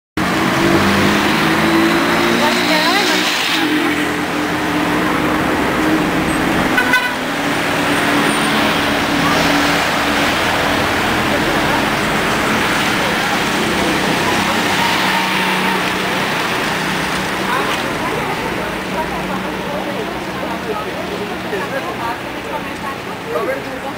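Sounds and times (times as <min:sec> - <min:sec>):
background voices: 0:00.2 - 0:23.9
cars passing: 0:00.2 - 0:23.9.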